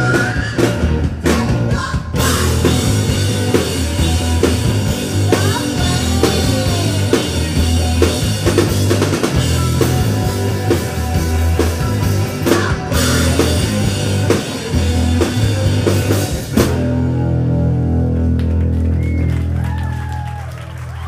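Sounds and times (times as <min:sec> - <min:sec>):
drum kit pounding: 0:00.0 - 0:18.7
live rock band playing: 0:00.0 - 0:21.0.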